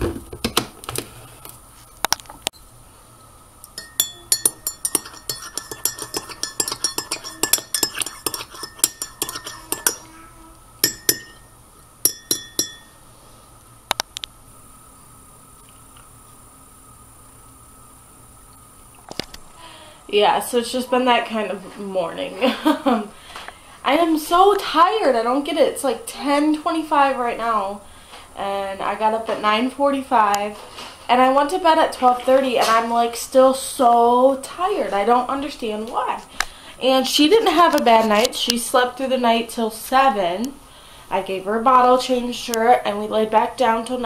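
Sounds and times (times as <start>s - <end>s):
metal spoon clinking in ceramic mug: 3.8s - 10.1s, 10.8s - 13.0s.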